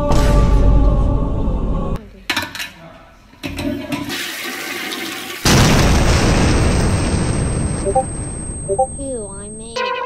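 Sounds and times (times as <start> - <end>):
toilet flushing: 3.5 - 5.5.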